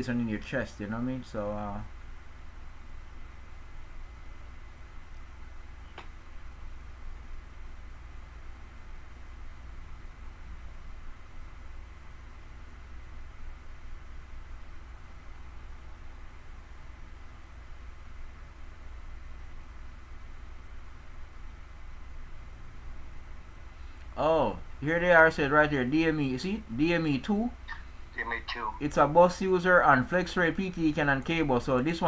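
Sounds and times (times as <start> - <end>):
faint background hiss: 0.0 - 32.0
steady low hum: 0.0 - 32.0.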